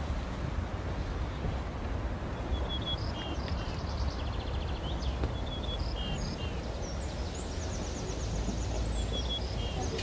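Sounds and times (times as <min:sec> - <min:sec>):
songbirds chirping: 0:01.0 - 0:10.0.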